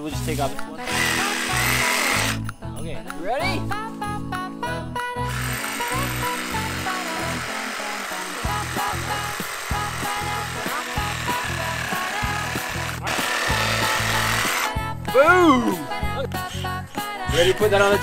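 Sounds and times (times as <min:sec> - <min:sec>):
background music: 0:00.0 - 0:18.0
reciprocating saw cutting wood: 0:00.8 - 0:02.4, 0:05.3 - 0:14.8.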